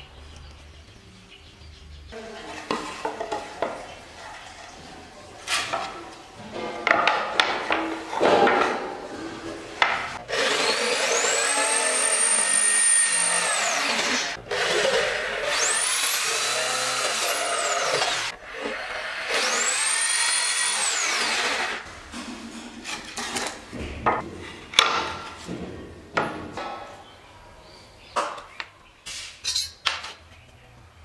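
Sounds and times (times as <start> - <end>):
electric drill boring into wood: 10.3 - 21.8.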